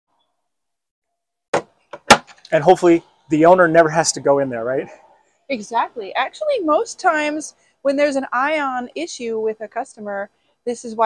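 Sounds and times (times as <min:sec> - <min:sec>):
wooden panel knock: 0:01.6 - 0:02.4.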